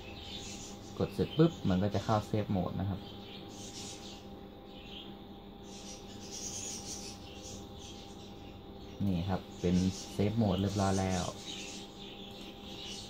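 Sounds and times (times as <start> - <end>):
computer fans humming: 0.0 - 13.0.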